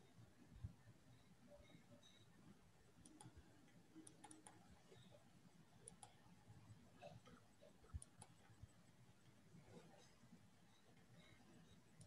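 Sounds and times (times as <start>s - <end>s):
faint computer mouse clicks: 3.0s - 5.0s, 5.8s - 6.2s, 7.0s - 8.5s.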